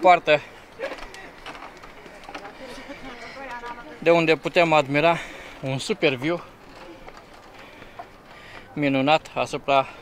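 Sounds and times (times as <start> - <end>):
faint voices talking: 0.0 - 10.0
outdoor background noise: 0.0 - 10.0.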